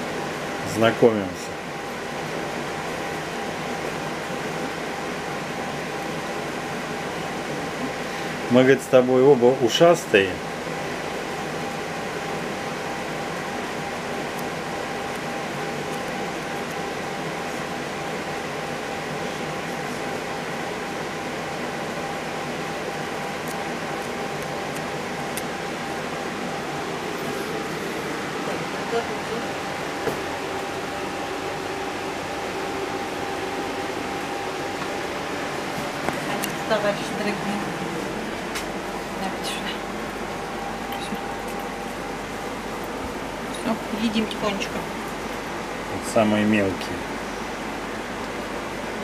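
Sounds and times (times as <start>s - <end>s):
steady mechanical hum: 0.0s - 49.0s.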